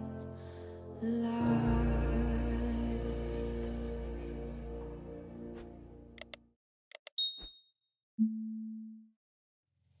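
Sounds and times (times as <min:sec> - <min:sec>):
music: 0:00.0 - 0:06.2
quick mouse clicks: 0:06.2 - 0:07.2
short high ding: 0:07.2 - 0:07.7.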